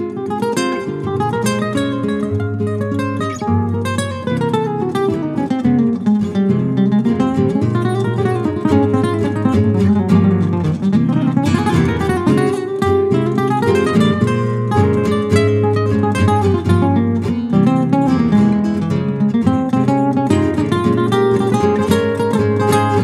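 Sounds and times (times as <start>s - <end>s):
acoustic guitar duo: 0.0s - 23.0s.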